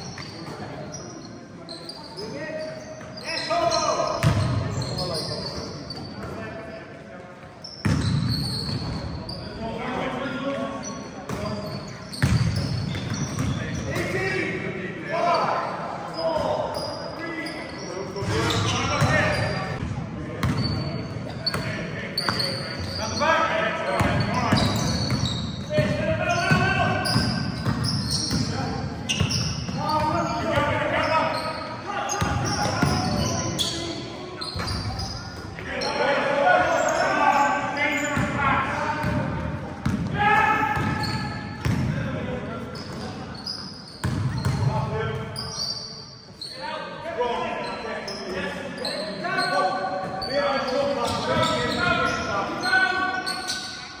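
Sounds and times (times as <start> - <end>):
shoes squeaking: 0.0 - 6.4, 7.6 - 9.6, 10.8 - 14.1, 15.3 - 19.8, 20.4 - 39.1, 42.6 - 46.8, 47.4 - 54.0
basketball bouncing on court: 4.2 - 4.6, 7.8 - 9.0, 12.1 - 14.1, 20.4 - 20.8, 24.0 - 30.7, 32.1 - 33.3, 39.0 - 42.0, 44.0 - 44.7
players calling out: 20.5 - 54.0.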